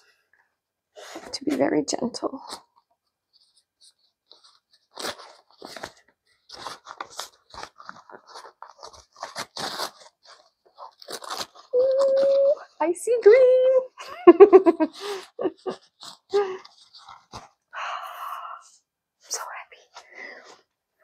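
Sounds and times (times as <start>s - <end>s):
packing paper crinkling and tearing: 2.4s - 12.6s, 14.6s - 17.6s.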